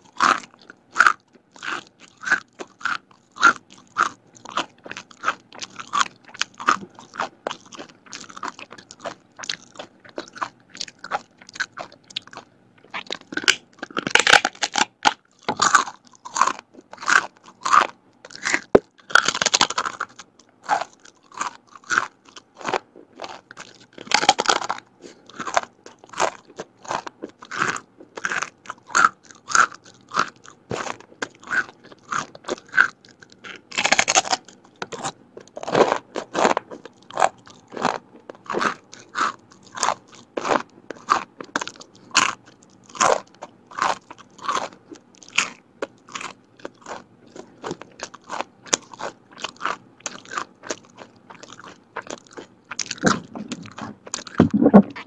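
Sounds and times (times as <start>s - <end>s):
crunchy crackers being chewed: 0.0s - 55.0s.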